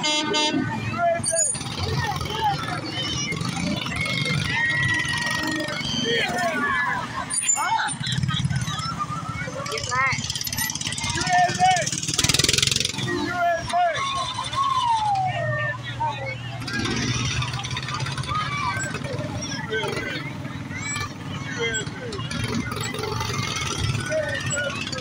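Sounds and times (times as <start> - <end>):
spectators' voices and calls: 0.0 - 25.0
small engine humming: 1.2 - 25.0.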